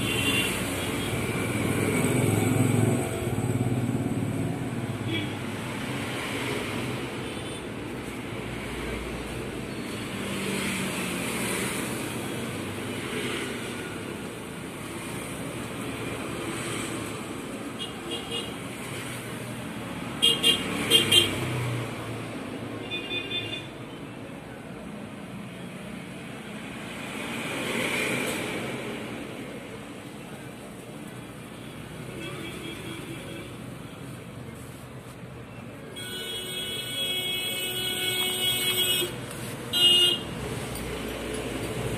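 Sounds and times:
road traffic noise: 0:00.0 - 0:41.9.

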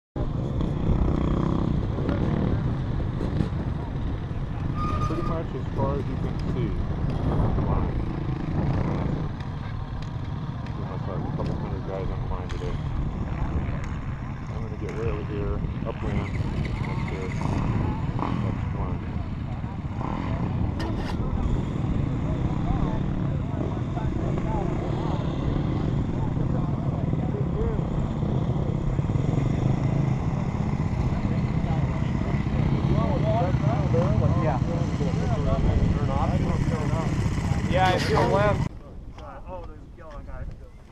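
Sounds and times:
dirt bike engine running: 0:00.2 - 0:38.7
people talking: 0:03.2 - 0:08.1, 0:10.7 - 0:29.5, 0:30.4 - 0:40.9.

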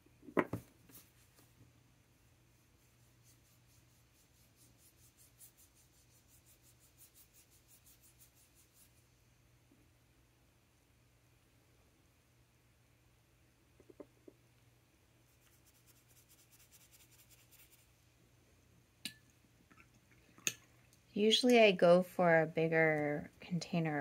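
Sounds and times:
brush strokes scratching on paper: 0:00.8 - 0:01.6, 0:02.2 - 0:09.2, 0:15.2 - 0:18.0.

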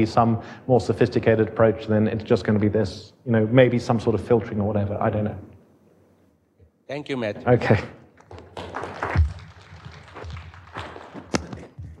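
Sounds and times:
audience clapping: 0:08.2 - 0:12.0.

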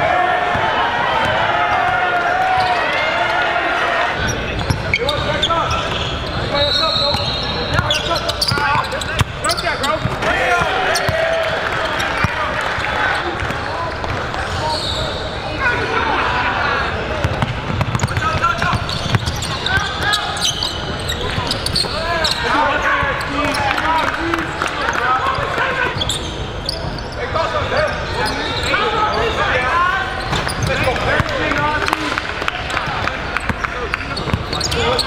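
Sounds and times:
crowd voices and shouts: 0:00.0 - 0:35.0.

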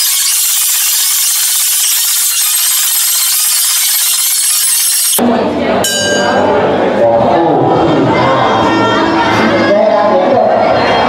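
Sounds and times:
loud high-pitched hiss: 0:00.0 - 0:05.2
arena crowd noise: 0:05.2 - 0:11.0
ring bell struck: 0:05.8 - 0:06.6.

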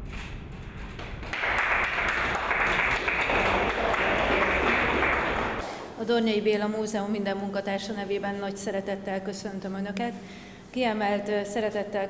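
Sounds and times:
audience applauding: 0:00.9 - 0:05.7.

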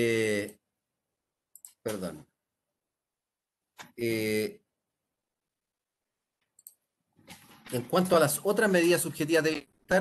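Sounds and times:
computer mouse clicking: 0:01.5 - 0:02.1, 0:06.4 - 0:07.8.

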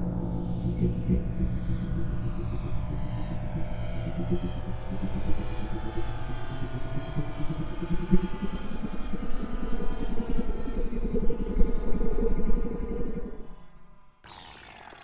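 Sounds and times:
ambient electronic music: 0:14.2 - 0:15.0.

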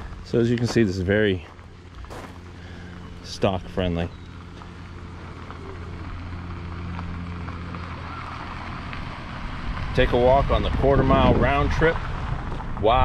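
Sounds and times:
minivan engine hum: 0:00.0 - 0:13.0
tyres on gravel: 0:00.0 - 0:13.0.

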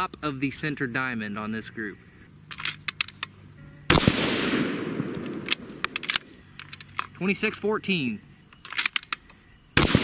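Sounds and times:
rifle shot with echo: 0:03.9 - 0:06.4, 0:09.8 - 0:10.0.

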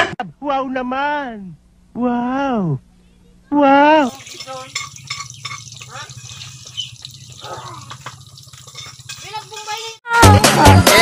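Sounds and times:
hot dogs frying with crackling pops: 0:04.0 - 0:10.0.

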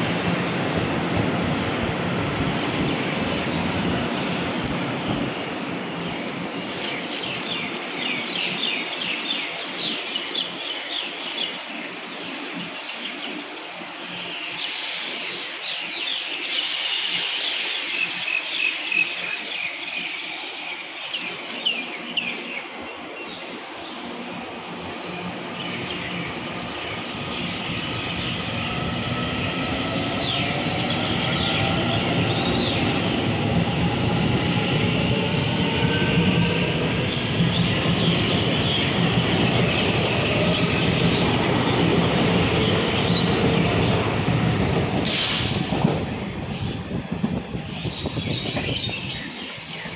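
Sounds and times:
train wheel rumble: 0:00.0 - 0:49.9.

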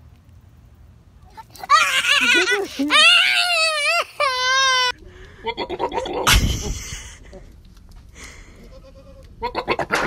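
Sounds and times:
goat bleating: 0:01.3 - 0:05.0, 0:08.6 - 0:10.0.

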